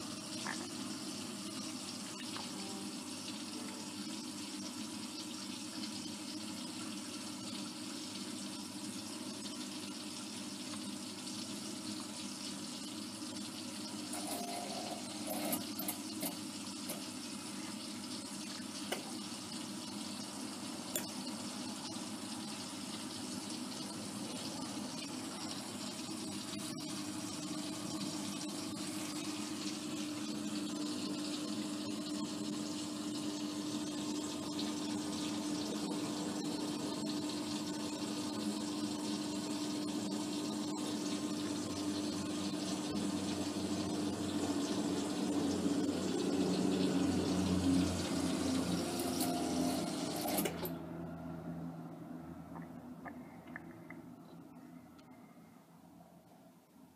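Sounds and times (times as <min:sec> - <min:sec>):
washing machine water rushing: 0:00.0 - 0:52.5
washing machine humming: 0:00.0 - 0:56.9.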